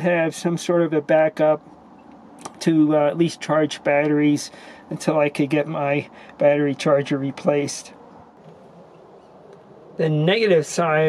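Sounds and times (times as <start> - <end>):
low hiss-like hum: 0.0 - 11.0.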